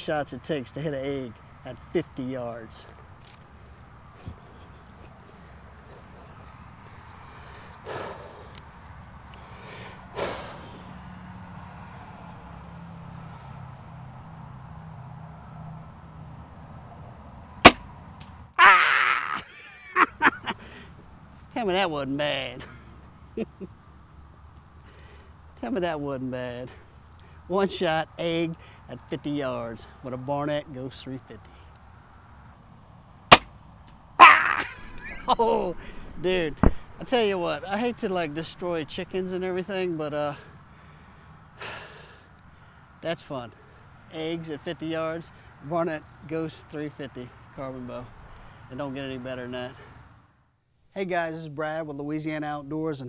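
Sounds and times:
man talking: 0:00.0 - 0:02.9, 0:21.5 - 0:22.8, 0:25.6 - 0:26.8, 0:27.5 - 0:31.5, 0:35.2 - 0:40.5, 0:43.0 - 0:48.1, 0:48.7 - 0:49.8, 0:51.0 - 0:53.0
quiet outdoor background: 0:00.0 - 0:53.0
man exhaling: 0:07.0 - 0:08.6, 0:09.4 - 0:11.1, 0:35.7 - 0:37.0, 0:40.5 - 0:42.7
crossbow firing snap: 0:17.6 - 0:18.4, 0:33.3 - 0:33.5
man whooping: 0:18.6 - 0:20.3, 0:34.2 - 0:35.9
bursts of laughter: 0:18.6 - 0:20.9, 0:22.6 - 0:23.8, 0:34.2 - 0:36.2.

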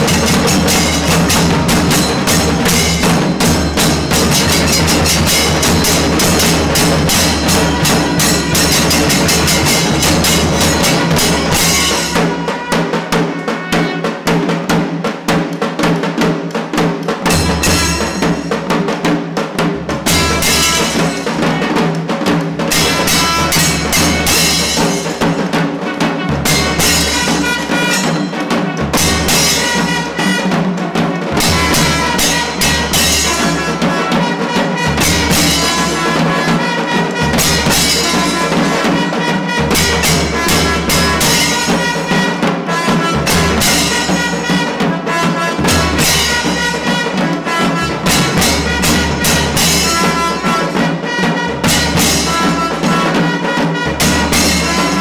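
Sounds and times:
drums beaten with sticks: 0:00.0 - 0:55.0
brass horns holding tones: 0:04.6 - 0:14.2, 0:25.9 - 0:55.0.

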